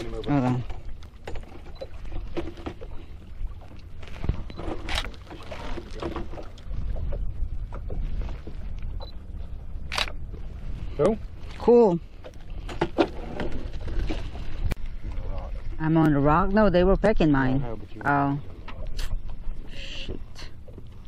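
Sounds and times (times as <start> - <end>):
boat engine rumble: 0.0 - 21.0.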